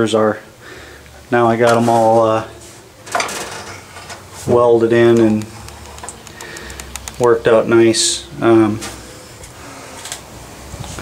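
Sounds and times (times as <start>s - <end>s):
fan-like machine hum and hiss: 0.0s - 11.0s
faint ticks: 5.4s - 7.3s.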